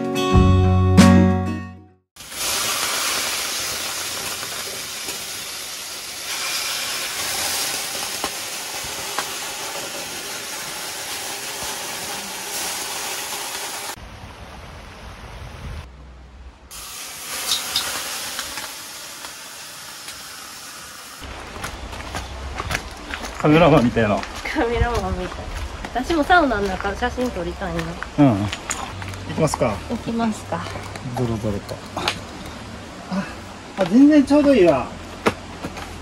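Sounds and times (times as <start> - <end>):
water hissing on hot rocks: 2.2 - 14.0, 16.7 - 21.7.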